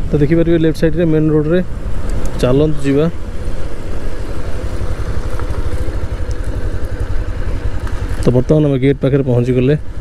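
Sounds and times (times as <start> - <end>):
motorcycle engine running: 0.0 - 10.0
wind and road noise: 0.0 - 10.0.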